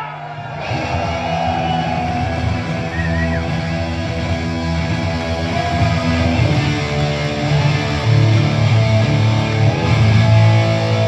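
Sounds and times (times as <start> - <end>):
heavy metal band playing live: 0.0 - 11.0
distorted electric guitar: 0.2 - 11.0.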